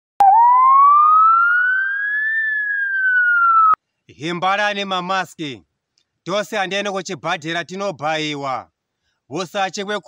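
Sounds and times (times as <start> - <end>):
rising whistle-like tone: 0.2 - 3.8.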